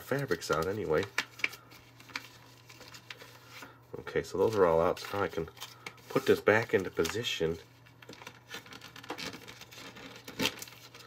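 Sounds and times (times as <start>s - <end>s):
plastic sheet crinkling: 0.0s - 11.0s.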